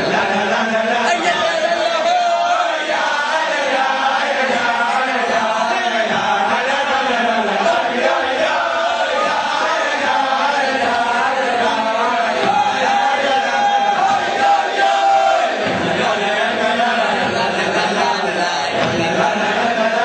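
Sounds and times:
men singing a chant: 0.0 - 20.0.

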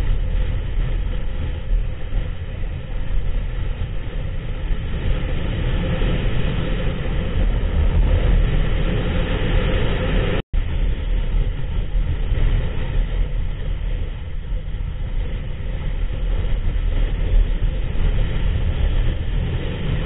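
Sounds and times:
motorcycle engine at road speed: 0.0 - 20.0
wind noise: 0.0 - 20.0.

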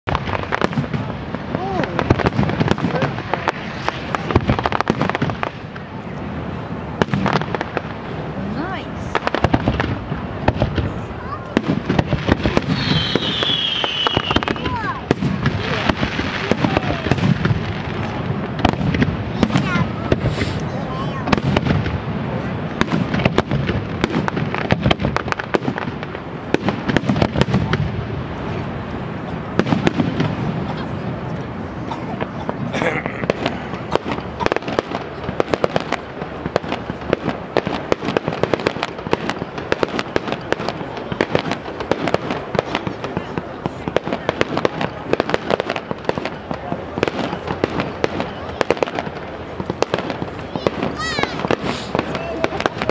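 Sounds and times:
fireworks bursting and crackling: 0.0 - 52.9
high falling whistle: 12.8 - 14.5.

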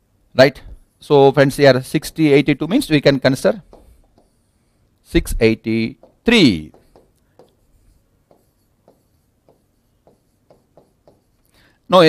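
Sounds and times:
pen tapping on screen: 3.5 - 4.6, 5.7 - 11.5.

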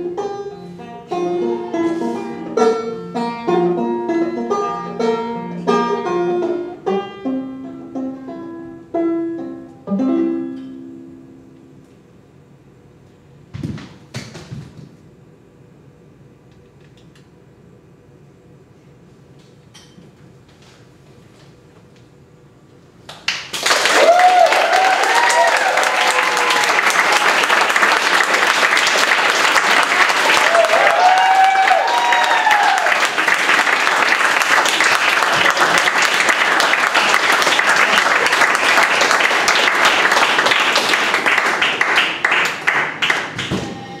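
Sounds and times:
audience applause: 23.3 - 43.5
whooping cheers: 23.7 - 27.6, 30.1 - 33.3.

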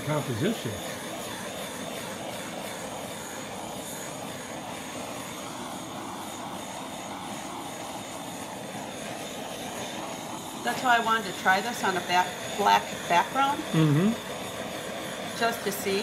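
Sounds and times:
blow torch flame hissing: 0.0 - 16.0.

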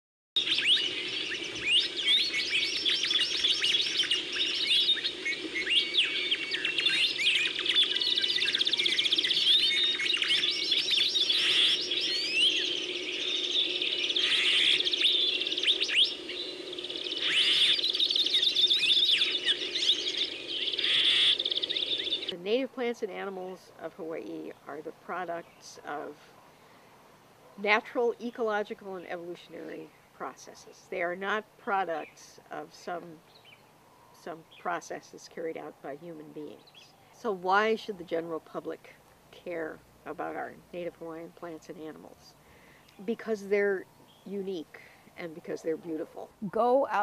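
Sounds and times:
birds chirping and trilling: 0.4 - 38.8, 39.4 - 47.0.

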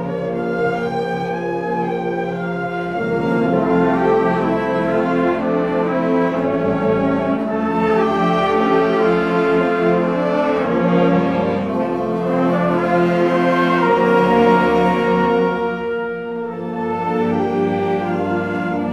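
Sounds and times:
brass: 0.0 - 18.9
orchestra playing slow chords: 0.0 - 18.9.

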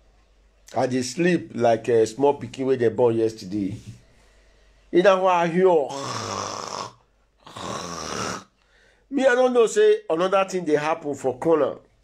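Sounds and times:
man imitating snoring: 5.8 - 8.6.

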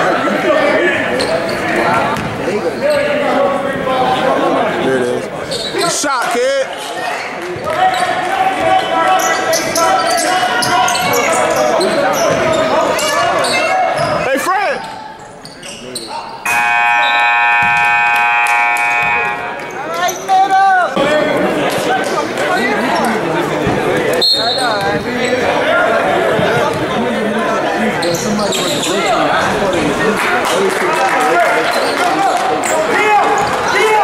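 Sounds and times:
crowd voices: 0.0 - 34.0
sneakers squeaking on court: 1.1 - 3.1, 7.2 - 16.5, 28.0 - 29.3
scoreboard buzzer blast: 16.5 - 19.6.

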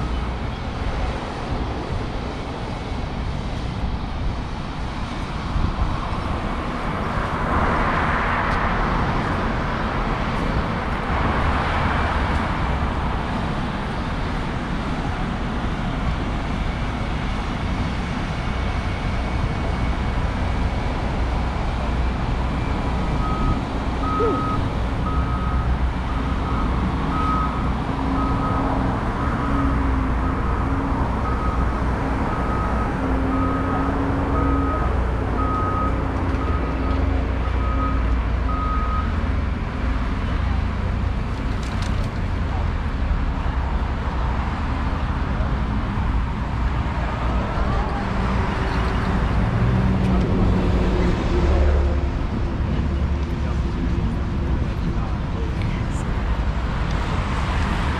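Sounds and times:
road traffic noise: 0.0 - 57.9
reversing alarm beeping: 22.5 - 30.5, 32.3 - 39.2.

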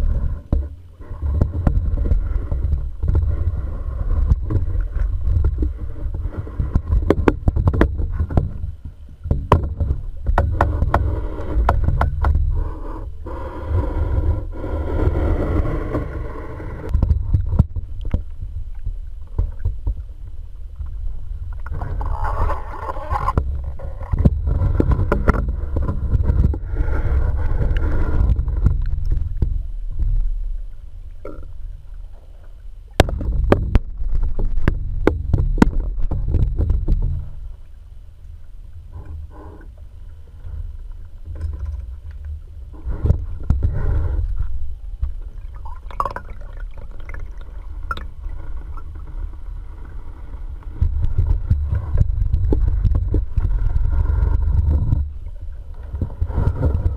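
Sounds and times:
knocks and splashes: 0.0 - 12.4, 32.9 - 37.3
low rumble: 0.0 - 56.9
muffled water sloshing and bubbling: 0.0 - 56.9
bubbly gurgles: 45.2 - 56.9.

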